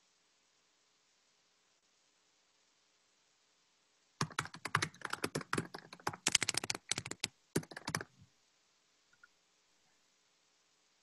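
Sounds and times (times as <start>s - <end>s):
computer keyboard typing: 4.2s - 8.2s.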